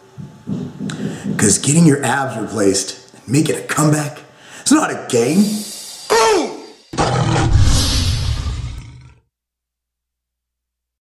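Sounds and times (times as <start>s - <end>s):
roar sound effect: 7.0s - 9.2s.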